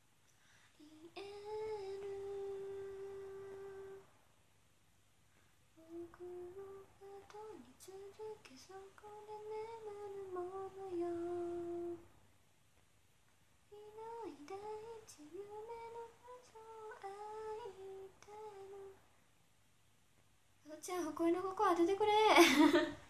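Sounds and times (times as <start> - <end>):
woman humming: 0.8 - 4.0, 5.8 - 12.1, 13.7 - 19.0.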